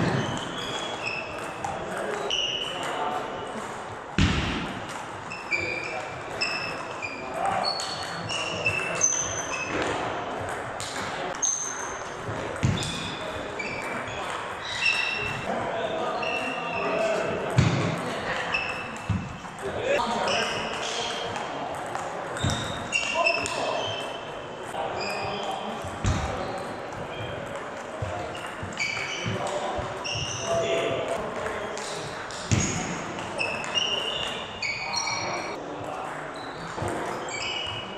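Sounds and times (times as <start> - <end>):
shoes squeaking on wooden floor: 0.0 - 3.5, 5.1 - 10.0, 11.4 - 15.5, 22.4 - 35.6, 36.4 - 37.9
voices in background: 0.0 - 37.9.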